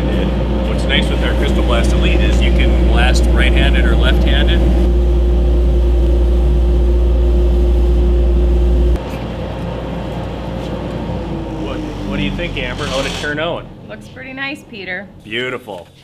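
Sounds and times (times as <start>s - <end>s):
sandblast cabinet hum and hiss: 0.0s - 13.6s
motor winding down: 0.0s - 15.7s.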